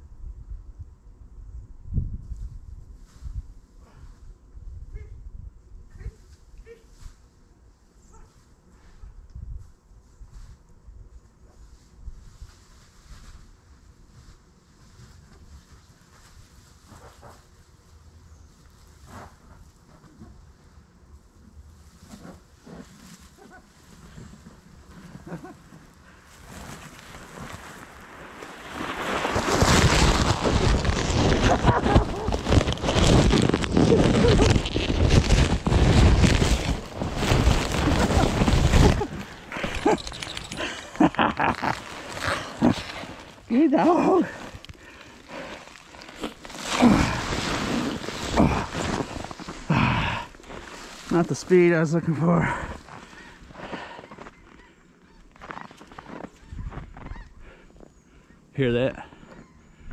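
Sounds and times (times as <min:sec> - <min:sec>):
foil sled crinkling: 0:21.8 - 0:57.3
sled scraping snow: 0:23.9 - 0:54.3.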